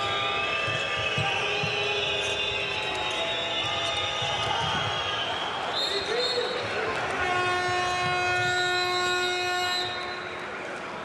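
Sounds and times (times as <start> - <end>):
arena crowd noise: 0.0 - 11.0
long steady horn tone: 7.0 - 10.4.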